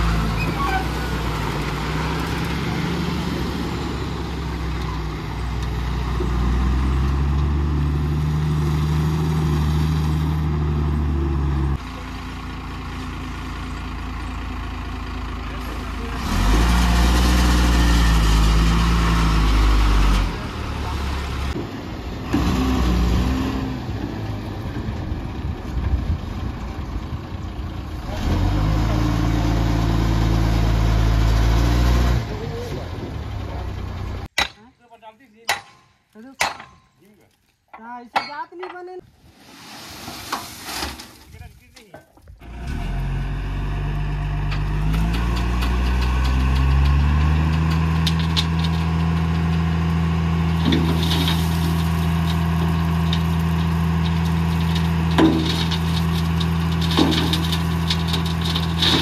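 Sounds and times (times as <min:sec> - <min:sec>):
diesel truck engine revving: 0:00.0 - 0:34.3, 0:42.4 - 0:59.0.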